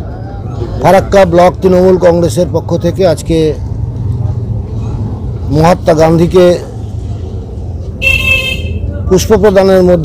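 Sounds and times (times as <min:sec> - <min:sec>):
traffic rumble: 0:00.0 - 0:10.0
vehicle horn honk: 0:08.0 - 0:08.8.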